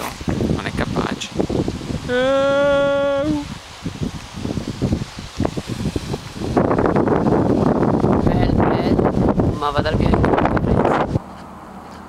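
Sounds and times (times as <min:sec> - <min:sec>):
wind buffeting microphone: 0:00.0 - 0:11.4.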